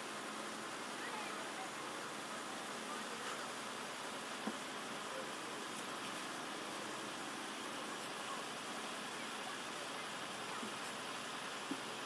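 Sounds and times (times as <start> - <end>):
open-air hiss of outdoor crowd: 0.0 - 12.0.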